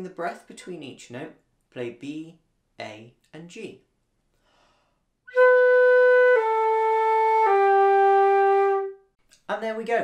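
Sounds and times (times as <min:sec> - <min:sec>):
flute playing notes: 0:05.3 - 0:09.1.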